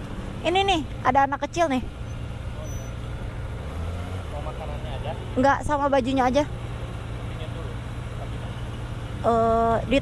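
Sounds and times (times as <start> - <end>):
motorcycle engine running: 0.0 - 10.0
slow city traffic: 0.0 - 10.0.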